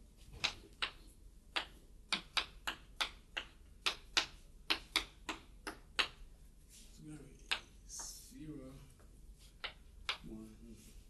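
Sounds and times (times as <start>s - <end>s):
chalk tapping on chalkboard: 0.4s - 6.2s, 7.4s - 8.3s, 9.4s - 10.4s.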